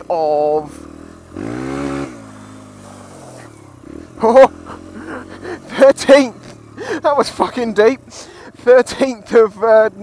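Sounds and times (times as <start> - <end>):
motorcycle engine revving: 0.0 - 10.0.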